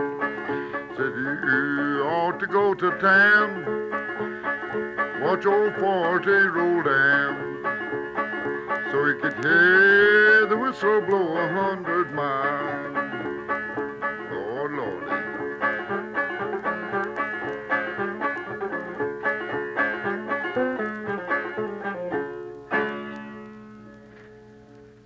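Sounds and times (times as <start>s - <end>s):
banjo picking: 0.0s - 24.0s.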